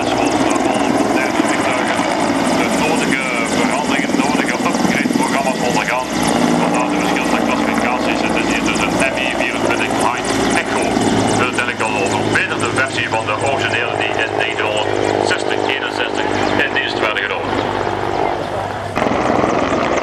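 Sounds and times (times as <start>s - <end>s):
helicopter flying past: 0.0s - 20.0s.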